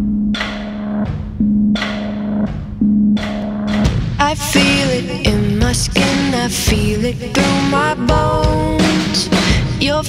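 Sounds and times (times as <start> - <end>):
slow heavy drum hits: 0.0 - 7.1.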